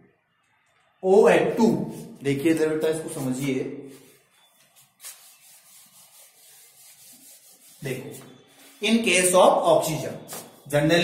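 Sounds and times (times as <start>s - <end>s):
duster rubbing on whiteboard: 2.9s - 8.8s, 10.2s - 10.8s.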